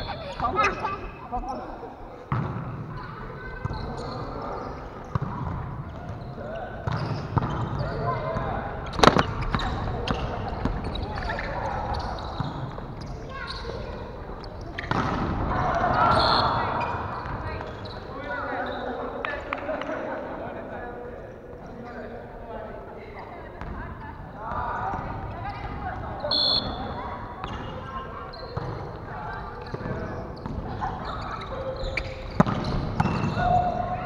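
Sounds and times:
players' voices calling out: 0.0 - 19.7.

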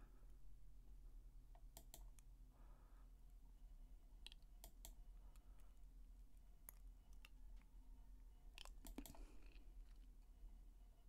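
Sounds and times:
low steady hum: 0.0 - 11.0
computer mouse clicks: 1.6 - 2.3, 4.2 - 5.4, 8.6 - 9.3.

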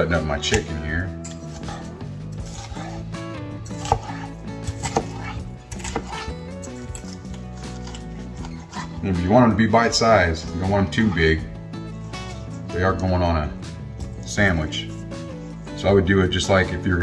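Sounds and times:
guitar music: 0.0 - 17.0
knife cutting raw meat: 0.4 - 9.6, 11.8 - 12.6.

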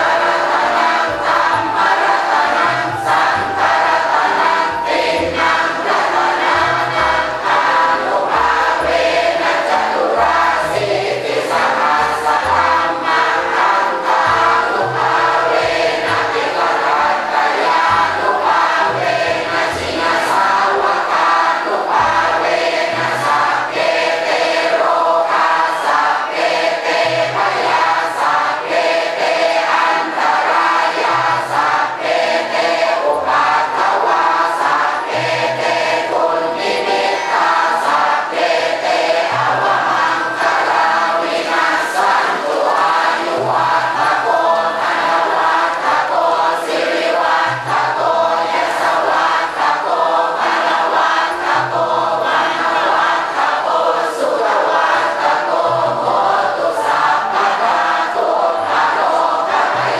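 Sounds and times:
group of voices singing: 0.0 - 59.9
instrumental accompaniment: 0.0 - 59.9.

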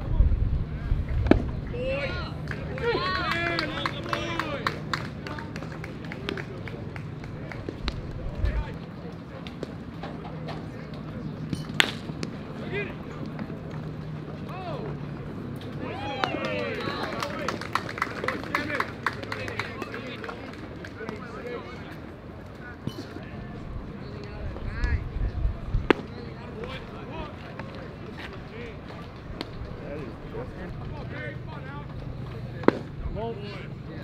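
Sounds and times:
outdoor background noise: 0.0 - 34.0
players calling and shouting: 0.8 - 34.0
bat cracking on ball: 1.2 - 1.6, 11.6 - 12.4, 25.9 - 26.1.

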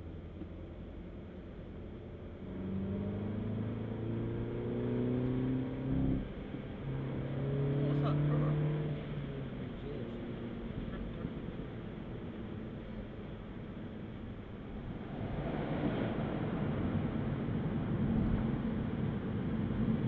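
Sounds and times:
car engine accelerating: 1.5 - 20.0.

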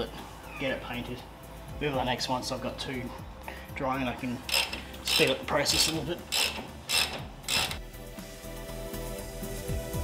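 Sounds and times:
ratchet wrench clicking: 4.5 - 7.8.

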